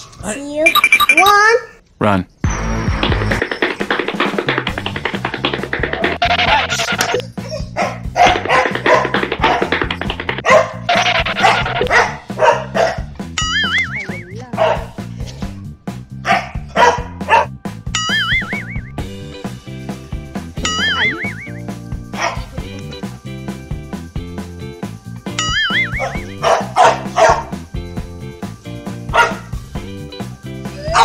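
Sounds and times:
background music: 2.4s - 31.0s
dog barking: 7.7s - 9.7s, 10.4s - 13.1s, 14.5s - 15.0s, 16.2s - 17.5s, 22.1s - 22.5s, 25.8s - 27.6s, 29.1s - 29.5s.

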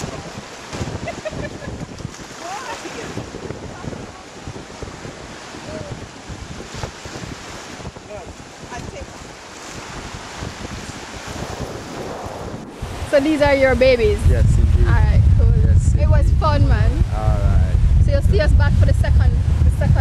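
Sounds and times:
surf washing on shore: 0.0s - 20.0s
wind buffeting microphone: 0.0s - 20.0s.

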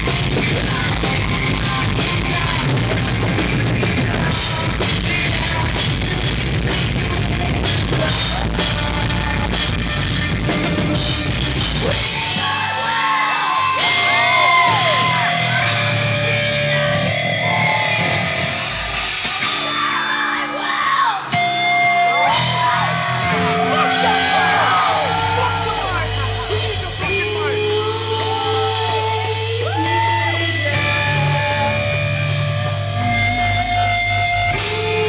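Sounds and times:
live rock band playing loud: 0.0s - 35.0s
sliding high guitar notes: 0.0s - 35.0s
yelled vocals: 0.0s - 35.0s.

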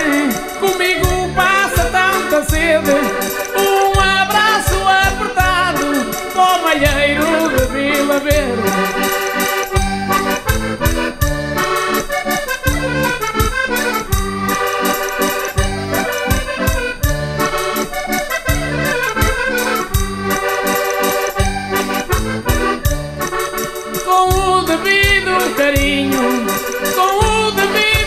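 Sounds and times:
button accordion melody: 0.0s - 28.0s
steady beat: 0.0s - 28.0s.

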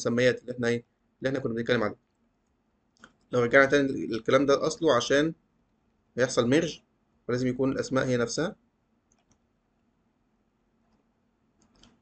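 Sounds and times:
faint computer clicks: 9.1s - 9.5s, 10.9s - 12.0s.

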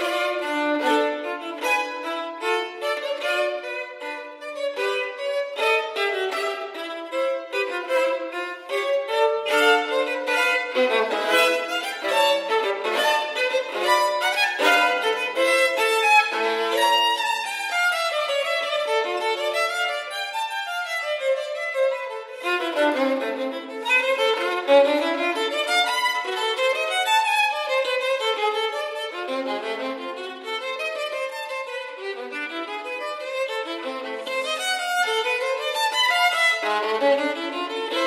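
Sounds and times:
solo violin playing: 0.0s - 38.0s.

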